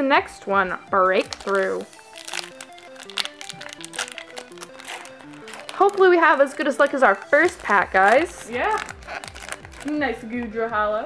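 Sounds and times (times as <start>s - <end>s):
simple background melody: 0.0s - 11.0s
foil wrapper crinkling: 1.0s - 10.4s.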